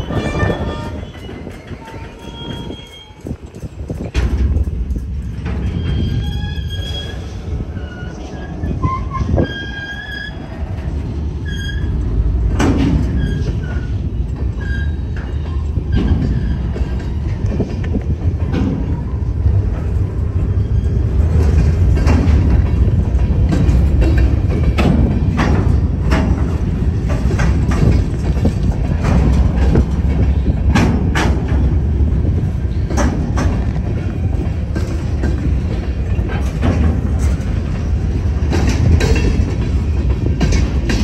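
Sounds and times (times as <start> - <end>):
high wheel squeals: 0.0 - 3.4, 5.6 - 10.6, 11.4 - 12.0, 13.0 - 17.4, 20.4 - 21.4
train wheels rumbling: 0.0 - 41.0
wheels clicking on rail joints: 0.0 - 41.0.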